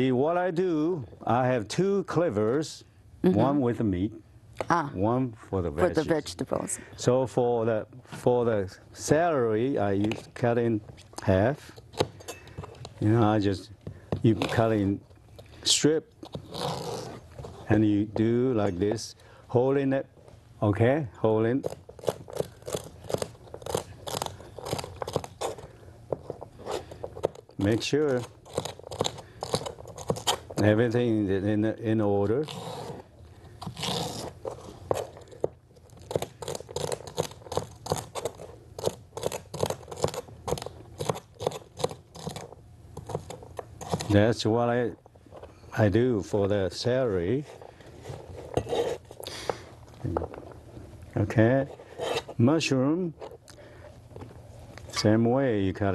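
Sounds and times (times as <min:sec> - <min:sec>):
utensil scraping: 0:16.2 - 0:19.0, 0:46.9 - 0:55.1.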